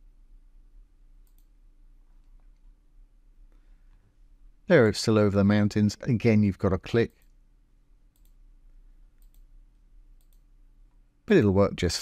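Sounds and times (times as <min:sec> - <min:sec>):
low steady background hum: 0:00.0 - 0:12.0
faint computer mouse clicks: 0:01.2 - 0:01.5, 0:08.1 - 0:08.4, 0:09.2 - 0:09.5, 0:10.2 - 0:10.5.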